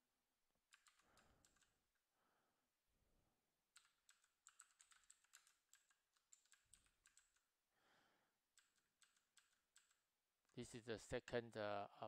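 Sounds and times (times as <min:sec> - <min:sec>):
faint keyboard typing: 0:00.6 - 0:02.0, 0:03.7 - 0:07.6, 0:08.5 - 0:10.7.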